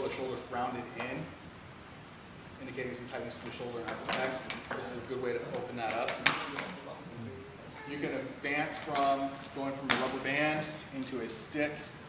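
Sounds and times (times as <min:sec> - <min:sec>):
voices talking: 0:02.8 - 0:12.0.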